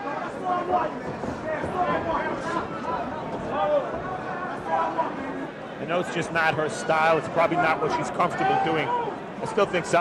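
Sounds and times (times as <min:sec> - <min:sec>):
crowd noise: 0:00.0 - 0:10.0
people speaking: 0:05.8 - 0:10.0.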